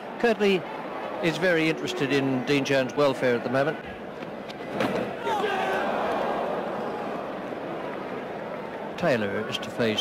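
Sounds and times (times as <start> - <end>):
crowd voices and shouts: 0.0 - 10.0.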